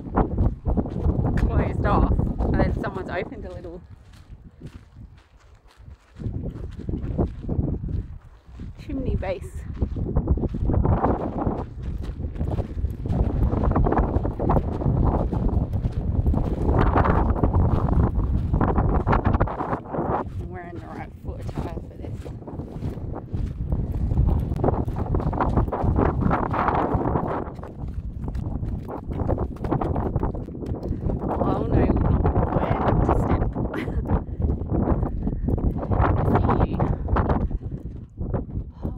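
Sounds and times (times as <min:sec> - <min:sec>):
wind buffeting microphone: 0:00.0 - 0:38.9.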